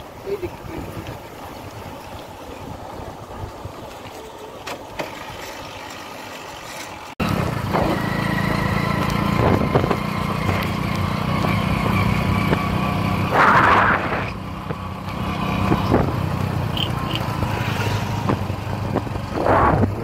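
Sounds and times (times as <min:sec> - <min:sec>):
motorbike engine running: 0:07.2 - 0:20.0
wind noise: 0:09.2 - 0:10.6, 0:15.6 - 0:20.0.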